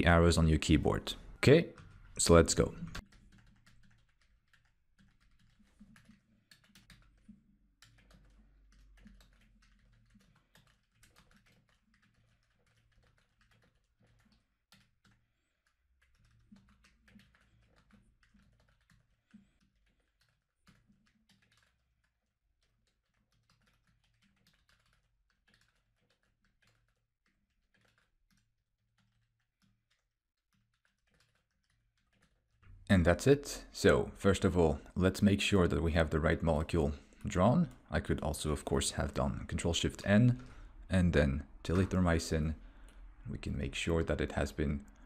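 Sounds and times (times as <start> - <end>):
computer keyboard typing: 0.0 - 45.0.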